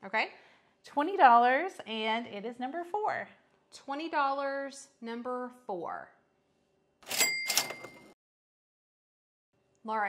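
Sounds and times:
cash register cha-ching: 7.0 - 8.2.

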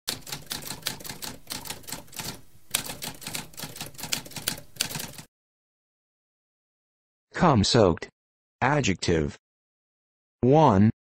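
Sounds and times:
typewriter typing: 0.1 - 5.3.

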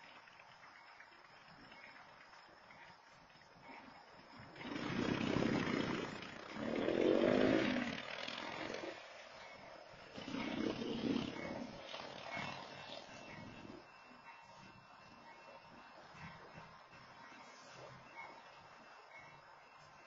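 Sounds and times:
motorcycle engines revving: 4.6 - 13.7.

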